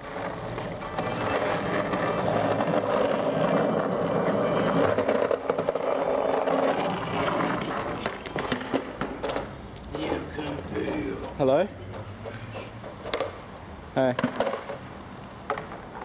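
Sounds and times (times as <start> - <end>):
skateboard wheels rolling on concrete: 0.0 - 16.0.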